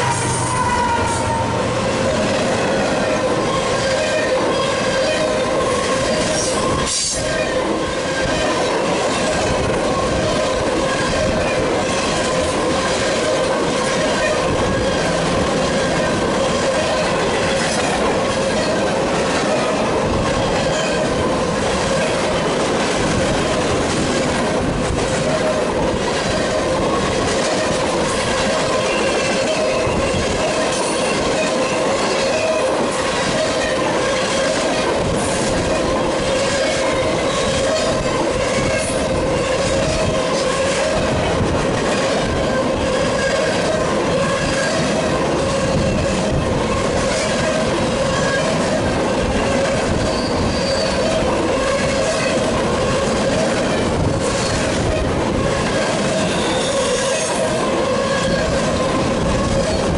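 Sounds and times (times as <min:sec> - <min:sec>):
freight train wheels on rails: 0:00.0 - 0:59.9.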